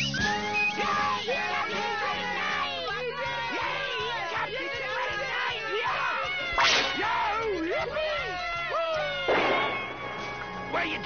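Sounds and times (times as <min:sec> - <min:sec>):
excited cartoon crowd voices: 0:00.0 - 0:11.0
sharp whip-like swish: 0:06.6 - 0:07.0.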